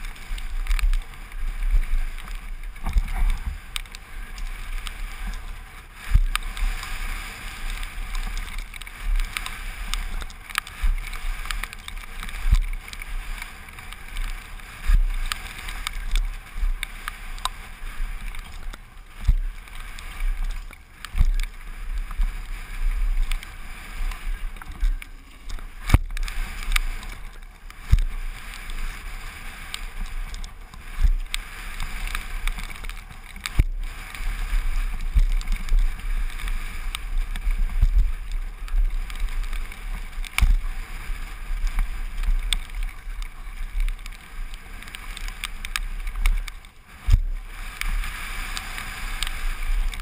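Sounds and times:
tyres on loose dirt: 0.0 - 50.0
wind buffeting microphone: 0.0 - 50.0.

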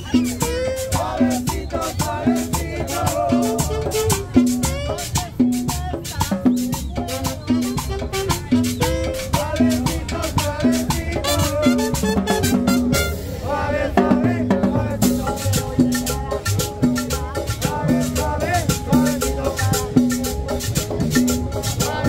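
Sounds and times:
person singing: 0.0 - 12.0
latin dance band playing: 0.0 - 22.0.

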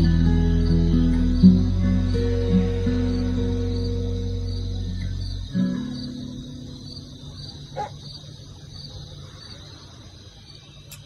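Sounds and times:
backing track low notes: 0.0 - 7.6
acoustic guitar chord ringing: 0.0 - 7.7
crickets chirping: 0.0 - 11.0.

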